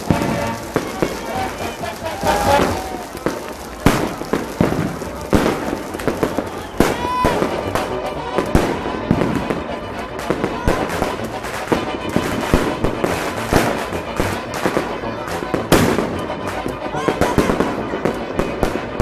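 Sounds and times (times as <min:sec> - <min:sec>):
background music: 0:00.0 - 0:19.0
fireworks bangs: 0:00.0 - 0:19.0.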